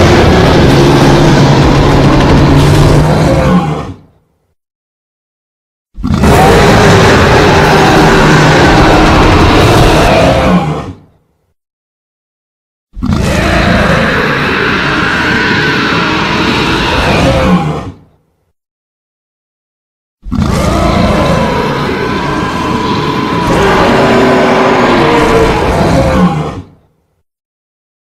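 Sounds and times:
monster roar: 0.0s - 4.0s, 6.0s - 11.0s, 13.0s - 18.0s, 20.2s - 26.7s.

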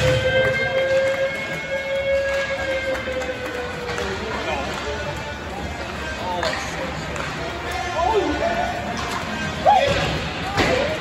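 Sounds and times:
arena horn blast: 0.0s - 3.4s.

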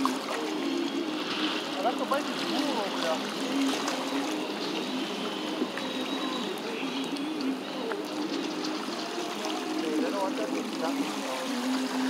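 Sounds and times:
water lapping against rocks: 0.0s - 12.0s.

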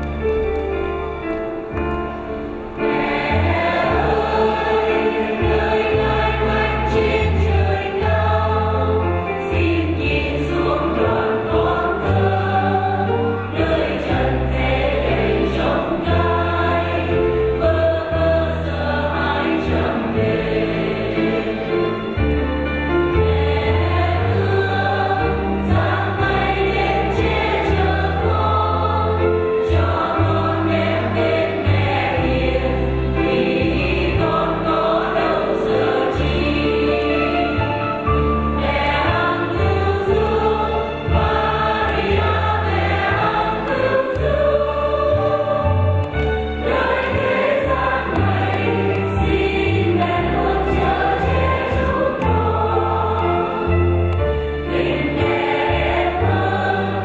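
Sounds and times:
church choir singing a hymn: 1.8s - 57.0s.

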